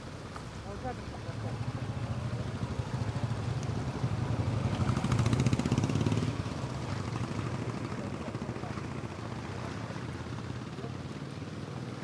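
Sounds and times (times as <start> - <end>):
low traffic rumble: 0.0 - 12.0
motorcycles passing: 0.6 - 12.0.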